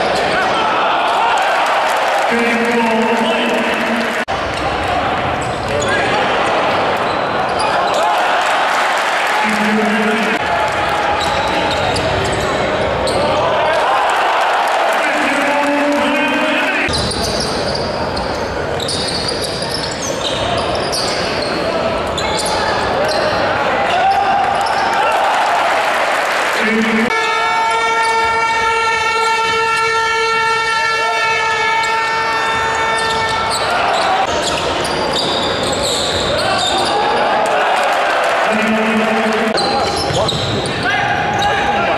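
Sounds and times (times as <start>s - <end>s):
crowd voices: 0.0s - 41.9s
horn long steady note: 26.6s - 33.3s, 38.5s - 39.6s
ball bouncing on court: 39.0s - 40.6s.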